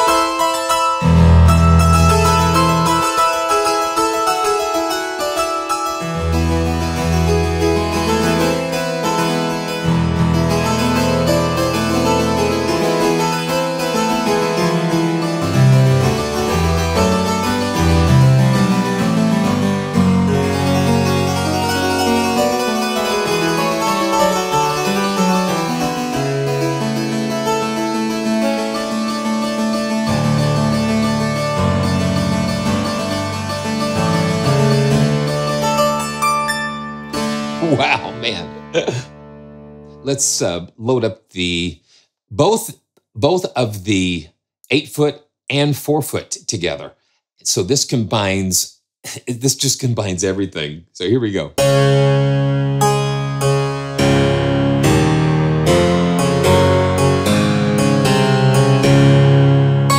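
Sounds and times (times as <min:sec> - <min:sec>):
harpsichord playing chords: 0:00.0 - 0:40.0, 0:51.6 - 0:59.9.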